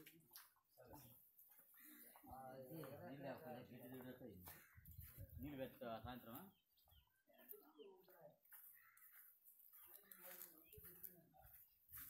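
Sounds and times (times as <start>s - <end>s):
faint distant voice: 7.3s - 12.0s.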